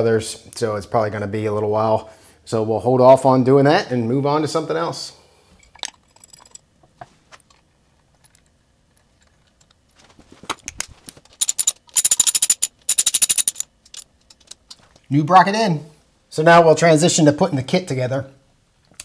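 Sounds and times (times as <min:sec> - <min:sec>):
ratchet wrench clicking: 0:11.4 - 0:14.0
tools and hardware clicking: 0:11.4 - 0:14.6.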